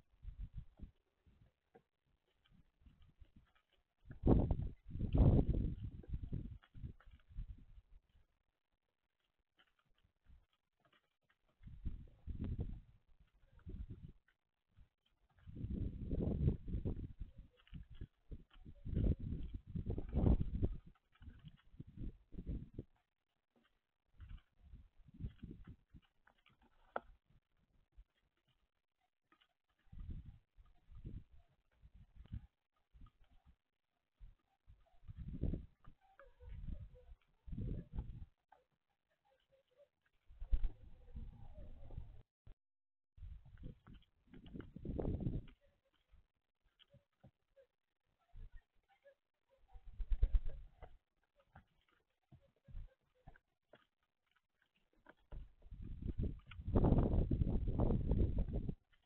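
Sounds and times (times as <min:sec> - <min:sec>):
doves pecking on plastic tray: 0:01.6 - 0:12.2, 0:16.8 - 0:34.8, 0:48.5 - 0:56.9.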